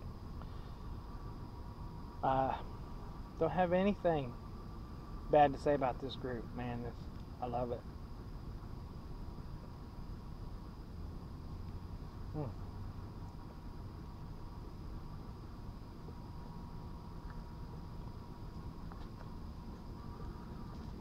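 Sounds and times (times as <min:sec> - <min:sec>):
faint insect drone: 0:00.0 - 0:21.0
person humming: 0:12.3 - 0:12.6.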